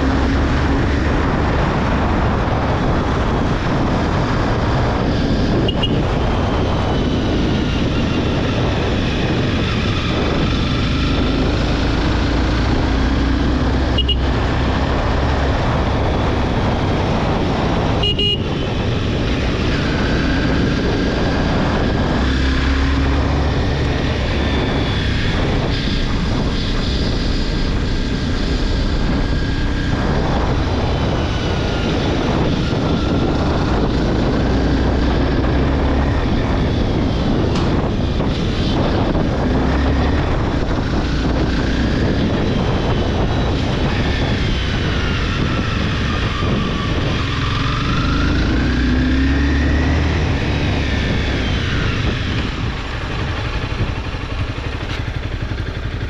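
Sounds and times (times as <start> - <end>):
motorcycle engine revving: 0.0 - 56.0
riding wind rush: 0.0 - 56.0.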